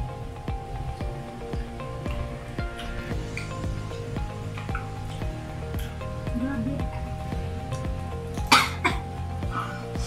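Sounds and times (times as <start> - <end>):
background music with steady beat: 0.0 - 10.0
person coughing: 8.5 - 9.1.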